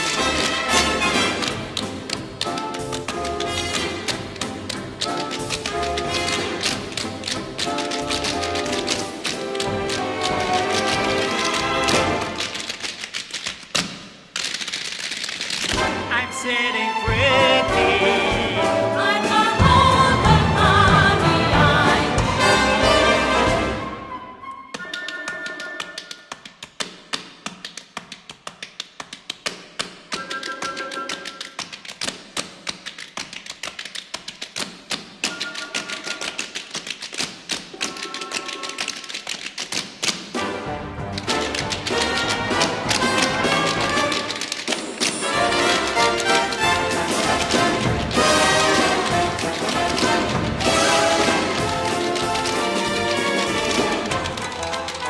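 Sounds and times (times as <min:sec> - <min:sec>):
orchestral accompaniment: 0:00.0 - 0:12.7, 0:15.7 - 0:26.2, 0:40.3 - 0:55.0
rapid percussive clicks: 0:00.0 - 0:16.0, 0:24.7 - 0:55.0
tap dancing: 0:00.0 - 0:16.0, 0:24.7 - 0:40.4, 0:41.1 - 0:55.0.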